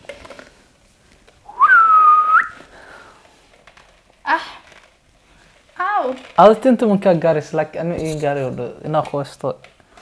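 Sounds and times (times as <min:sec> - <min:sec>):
rising whistled note: 0:01.5 - 0:02.6.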